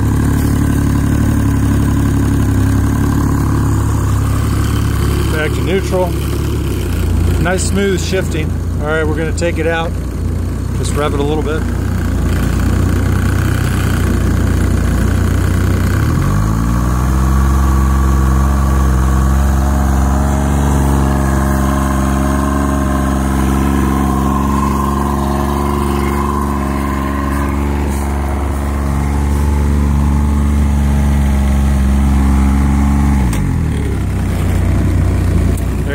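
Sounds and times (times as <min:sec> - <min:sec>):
outboard motor revving: 0:00.0 - 0:35.9.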